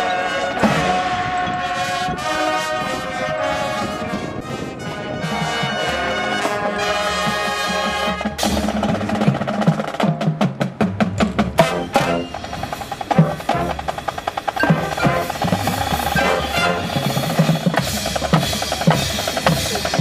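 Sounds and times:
snare drum strokes and rolls: 0.5s - 20.0s
pitched percussion tones: 3.3s - 20.0s
bass drums: 6.9s - 20.0s.

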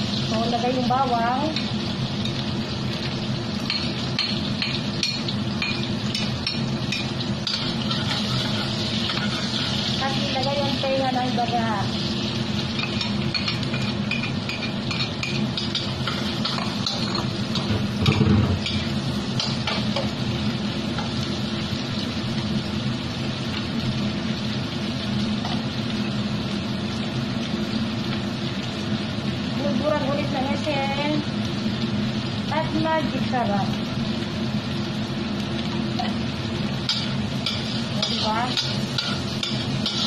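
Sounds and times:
food sizzling in a wok: 0.0s - 40.0s
spatula scraping and tapping pan: 3.6s - 9.8s, 36.8s - 40.0s.

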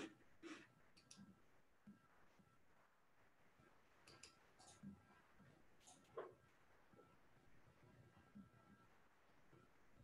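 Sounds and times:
faint computer mouse clicks: 4.0s - 5.0s.

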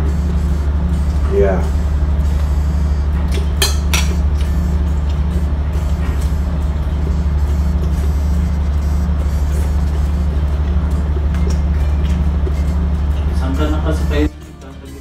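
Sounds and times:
ship engines droning: 0.0s - 15.0s.

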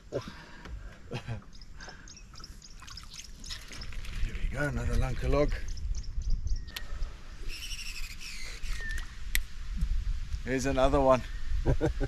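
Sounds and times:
short high bird call: 7.4s - 9.1s.

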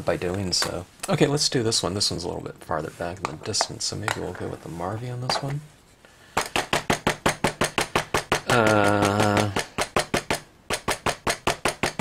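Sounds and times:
inking tool tapping rubber stamp: 6.4s - 12.0s.

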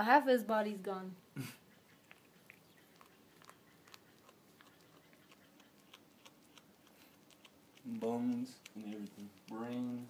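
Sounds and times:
cat chewing bones: 1.9s - 10.0s.

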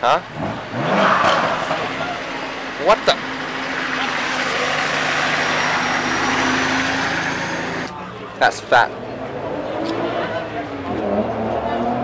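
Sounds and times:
car engine revving hard: 0.2s - 7.9s, 9.1s - 12.0s.

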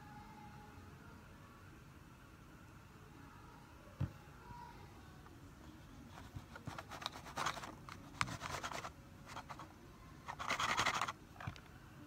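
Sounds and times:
scratchy rubbing strokes: 6.1s - 9.7s.

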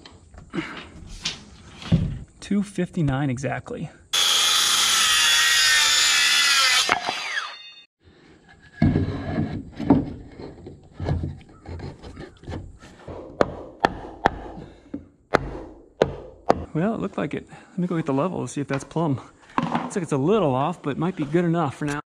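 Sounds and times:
power saw cutting wood: 4.1s - 7.9s
wooden knocks and thumps: 8.7s - 16.8s, 18.7s - 20.0s.

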